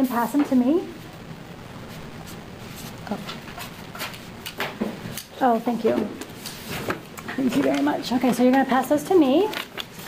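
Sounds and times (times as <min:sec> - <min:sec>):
markers clicking and tapping on table: 0:06.9 - 0:08.8.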